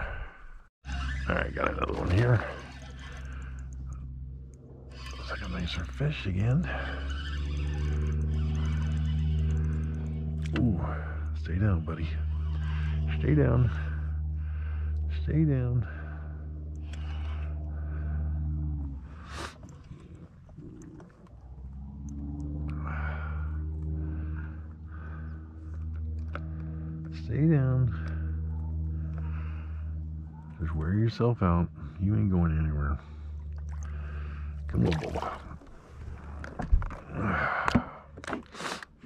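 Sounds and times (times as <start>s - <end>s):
small motor humming: 0.8s - 30.7s.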